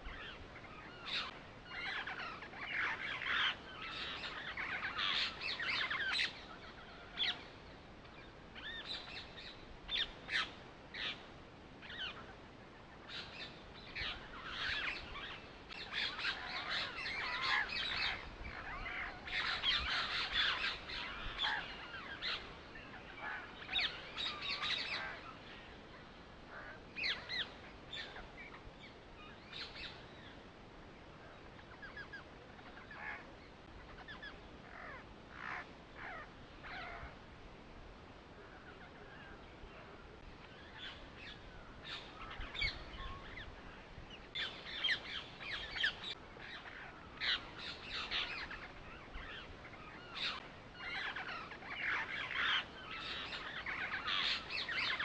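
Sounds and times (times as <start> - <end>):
birds chirping: 0.0 - 37.2, 37.9 - 55.0.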